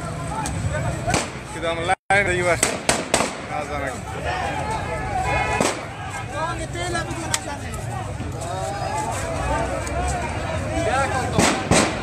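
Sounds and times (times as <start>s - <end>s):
sharp cracks: 2.5s - 3.5s, 5.6s - 5.9s, 11.4s - 12.0s
men shouting in a crowd: 3.8s - 11.4s.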